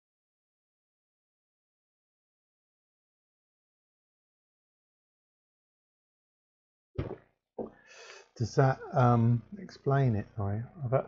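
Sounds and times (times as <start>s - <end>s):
man breathing: 7.7s - 8.4s
man speaking: 8.4s - 11.0s.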